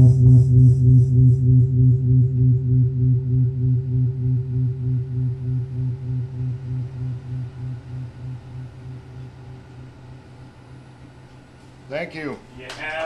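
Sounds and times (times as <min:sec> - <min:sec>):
throbbing low electronic drone: 0:00.0 - 0:11.7.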